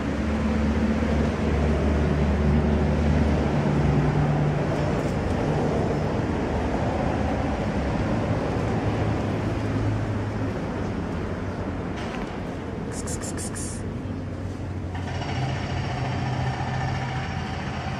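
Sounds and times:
road traffic rumble: 0:00.0 - 0:17.9.

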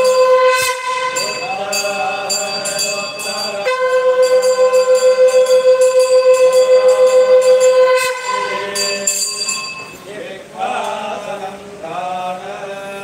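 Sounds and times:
long horn-like wind note: 0:00.0 - 0:01.5, 0:03.6 - 0:09.0
hand bell ringing: 0:00.0 - 0:10.1.

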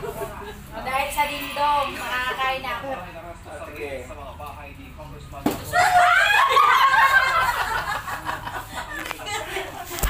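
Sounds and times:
women laughing loudly: 0:05.8 - 0:10.0.

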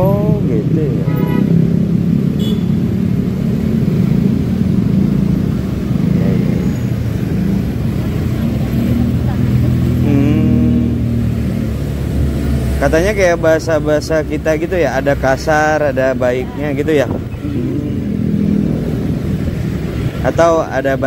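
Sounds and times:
road and traffic noise: 0:00.0 - 0:21.0
motorcycle engine running: 0:16.6 - 0:20.4.

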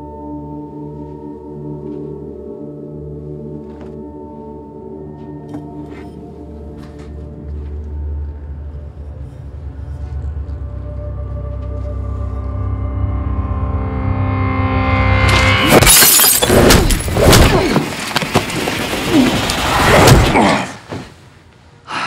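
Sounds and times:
low synth drone: 0:00.0 - 0:15.8
glass shattering crash: 0:15.3 - 0:18.0
fight hits and crashes: 0:15.3 - 0:21.1.

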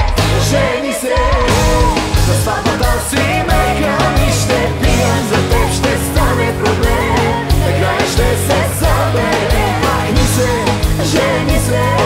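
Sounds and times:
bass guitar and keyboards: 0:00.0 - 0:12.0
drums keeping a steady beat: 0:00.0 - 0:12.0
woman singing: 0:00.0 - 0:12.0.

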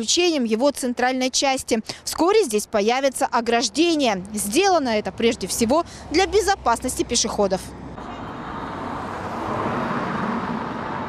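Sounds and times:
road traffic rush: 0:00.0 - 0:11.0.

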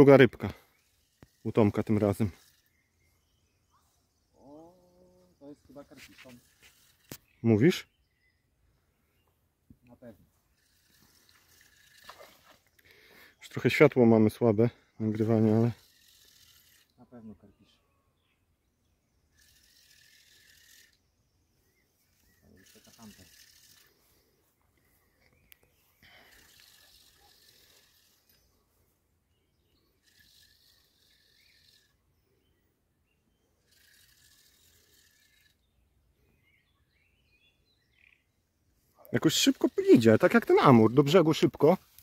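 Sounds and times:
soft hissing: 0:00.4 - 0:07.4, 0:09.8 - 0:13.4, 0:19.3 - 0:28.9.

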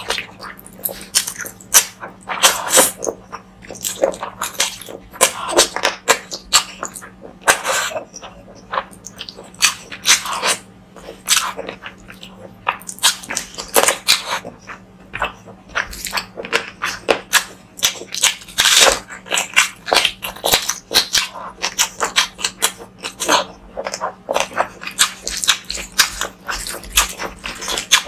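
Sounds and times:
mouth chewing food: 0:00.0 - 0:28.0.

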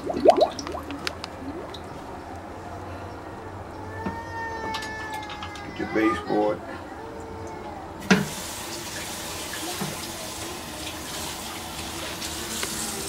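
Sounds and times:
water rushing into toilet bowl: 0:00.0 - 0:01.1.

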